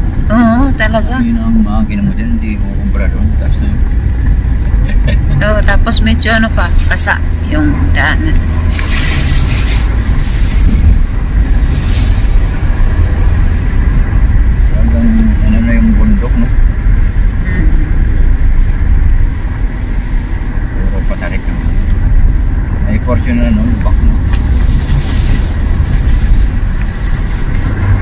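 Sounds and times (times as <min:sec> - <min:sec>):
car driving on concrete road: 0:00.0 - 0:28.0.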